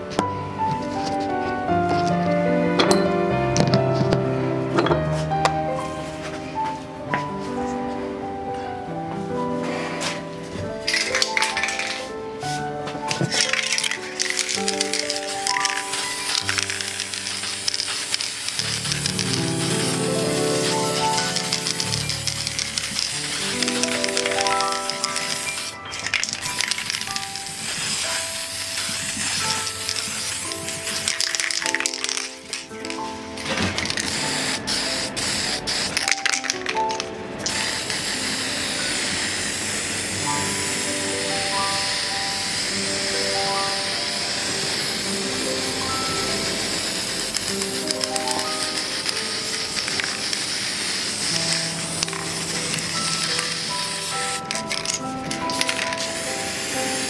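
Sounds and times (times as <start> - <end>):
background music with melody: 0.0 - 57.0
aerosol spray hissing: 1.0 - 2.5, 9.5 - 57.0.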